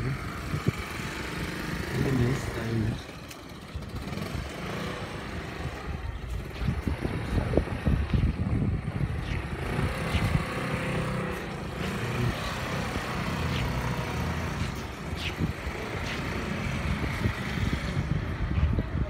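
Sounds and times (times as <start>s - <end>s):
scooter engine running: 0.0s - 19.0s.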